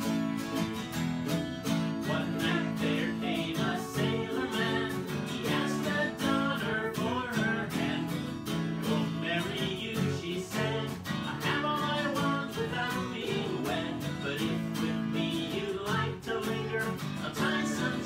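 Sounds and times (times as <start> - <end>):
acoustic guitar strumming: 0.0 - 18.0
man and woman singing: 1.9 - 18.0.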